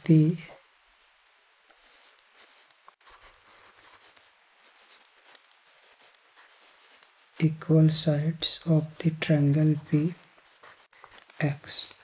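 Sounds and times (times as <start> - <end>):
stylus scratching on tablet: 1.7 - 12.0.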